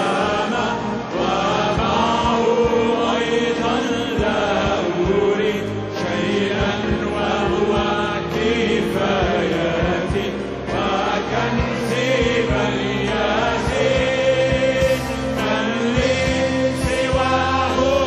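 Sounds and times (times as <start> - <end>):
group singing worship song: 0.0 - 18.0
instruments with steady beat: 1.3 - 18.0.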